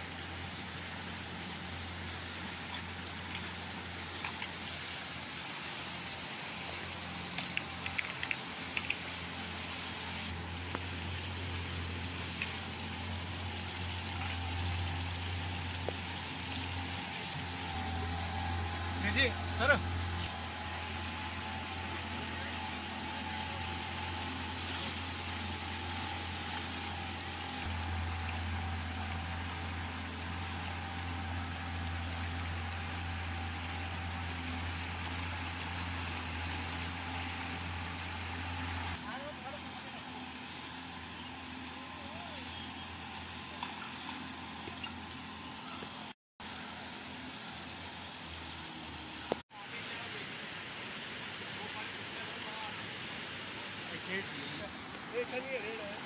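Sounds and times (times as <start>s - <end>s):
outboard motor running: 0.0s - 56.0s
river water rushing: 0.0s - 56.0s.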